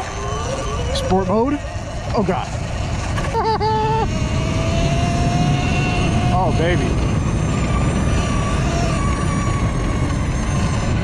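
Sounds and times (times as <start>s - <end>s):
electric motor whine: 0.0s - 11.0s
wind noise: 0.0s - 11.0s.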